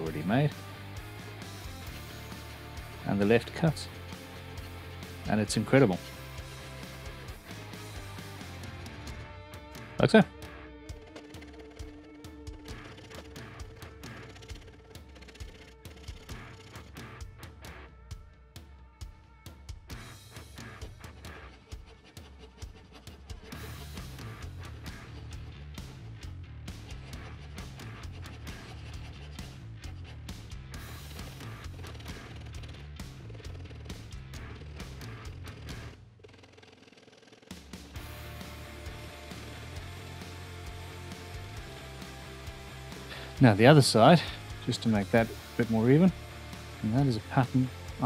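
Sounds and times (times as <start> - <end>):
background music with bass beat: 0.0 - 48.0
file scraping rapidly: 11.0 - 17.2, 20.0 - 25.9, 26.6 - 37.2.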